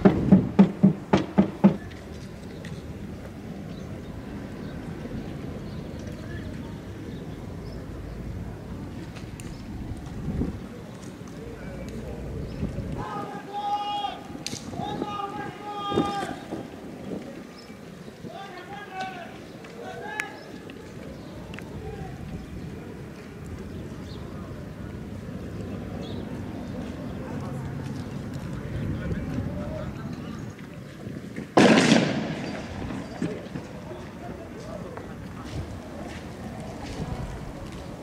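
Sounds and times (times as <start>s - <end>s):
loud thump: 0.0s - 1.8s
men shouting: 13.0s - 16.5s
loud bang: 31.6s - 32.9s.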